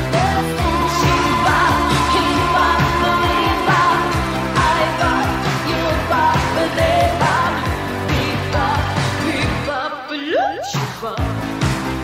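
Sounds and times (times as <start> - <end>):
repeating drum beat: 0.0 - 9.6
full band backing: 0.0 - 9.8, 10.6 - 12.0
pop song vocals: 0.0 - 12.0.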